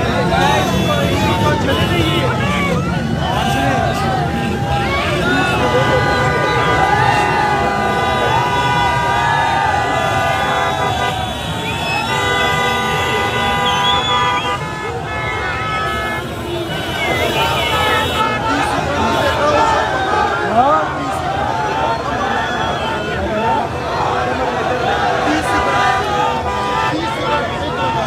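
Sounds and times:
large crowd voices: 0.0s - 28.0s
vehicle horns held long: 9.8s - 19.4s.

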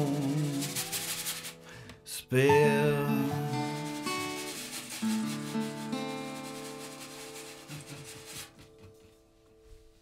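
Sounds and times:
brushed snare drum: 0.0s - 1.6s, 3.5s - 9.0s
acoustic guitar and dobro chords: 0.0s - 9.0s.

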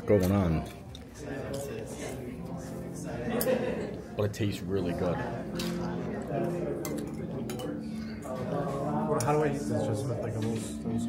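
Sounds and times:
cutlery and dishes clinking: 0.0s - 1.9s, 3.3s - 3.7s, 5.5s - 9.5s
background talk: 0.0s - 11.0s
soft music: 0.0s - 11.0s.

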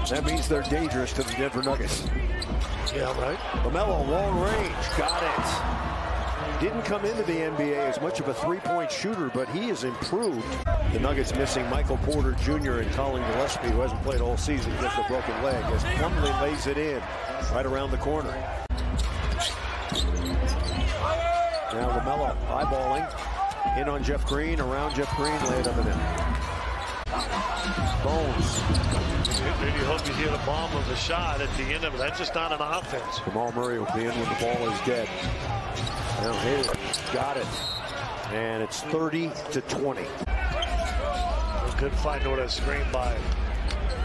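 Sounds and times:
crowd noise: 0.0s - 44.0s.

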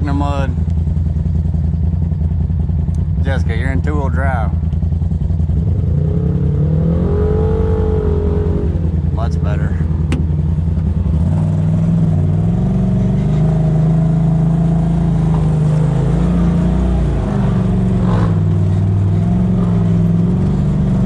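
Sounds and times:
off-road vehicle engine running: 0.0s - 21.0s.

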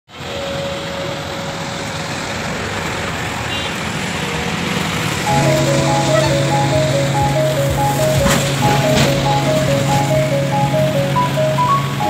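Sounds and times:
road traffic on wet highway: 0.1s - 12.0s
background music: 5.3s - 12.0s.

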